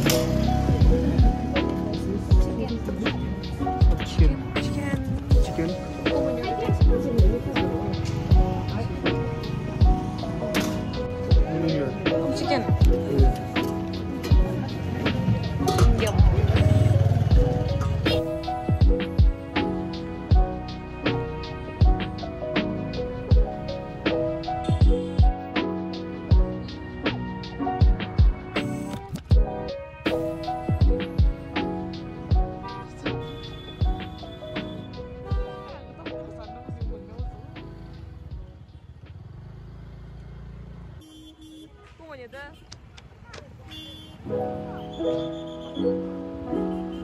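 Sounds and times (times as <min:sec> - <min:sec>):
vehicle engine rumbling: 0:00.0 - 0:25.6, 0:35.9 - 0:46.7
lo-fi music with kick drum: 0:00.1 - 0:33.2, 0:33.8 - 0:37.7.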